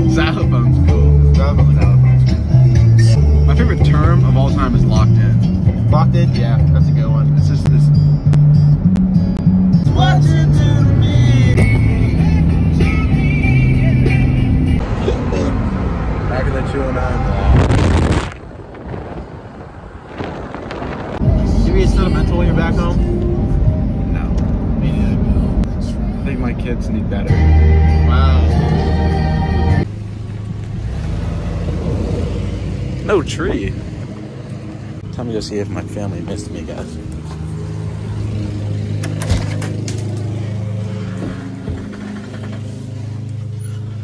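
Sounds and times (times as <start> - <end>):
music with low bass line: 0.0 - 14.8
car rumbling on road: 0.0 - 44.0.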